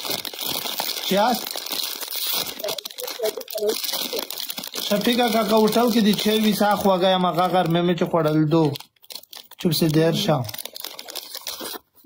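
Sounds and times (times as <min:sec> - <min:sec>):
crackling rustling noise: 0:00.0 - 0:12.0
person speaking: 0:01.0 - 0:01.6, 0:02.4 - 0:08.8, 0:09.5 - 0:10.6.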